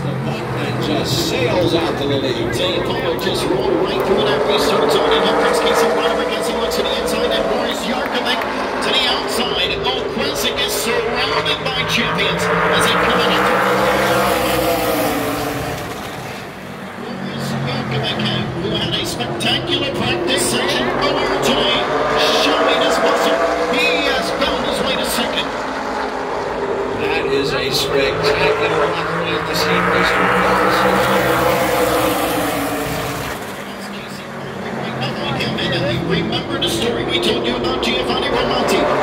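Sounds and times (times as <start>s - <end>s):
race cars passing at full speed: 0.0s - 39.0s.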